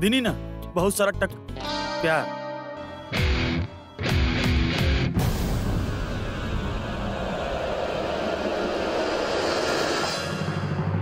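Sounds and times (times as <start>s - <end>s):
noisy whooshing drone: 5.2s - 11.0s.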